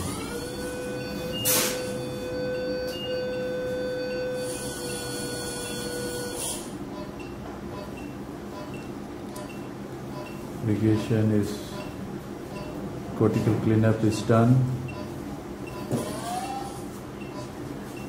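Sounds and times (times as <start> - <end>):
steady electronic tone: 0.0 - 7.2.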